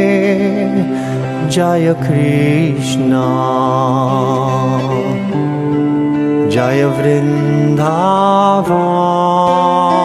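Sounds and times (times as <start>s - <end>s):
man singing a slow chant: 0.0s - 5.4s, 6.4s - 10.0s.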